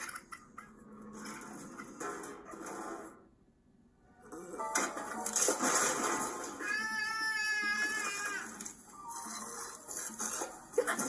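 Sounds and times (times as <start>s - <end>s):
animated baby squealing: 6.6s - 8.6s.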